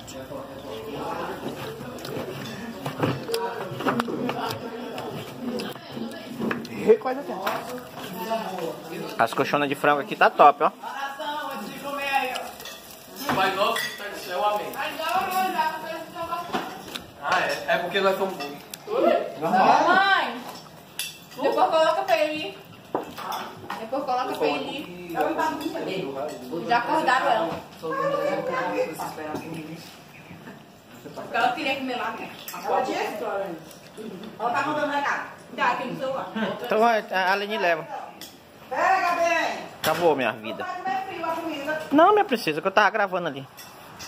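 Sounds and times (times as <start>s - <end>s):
cutlery clinking on plates: 12.3s - 15.5s, 16.5s - 18.7s, 20.4s - 22.2s, 22.8s - 23.9s, 25.2s - 26.6s, 43.5s - 44.0s.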